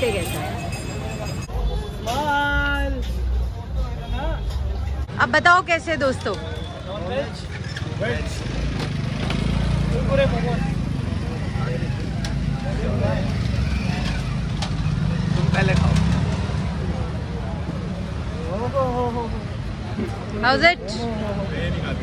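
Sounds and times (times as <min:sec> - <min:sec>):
street traffic rumble: 0:00.0 - 0:22.0.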